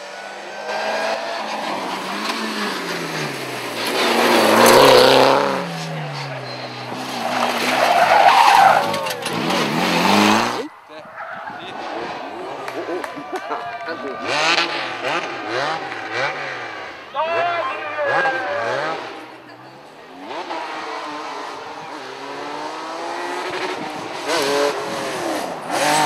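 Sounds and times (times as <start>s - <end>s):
rally car engines revving: 0.0s - 26.0s.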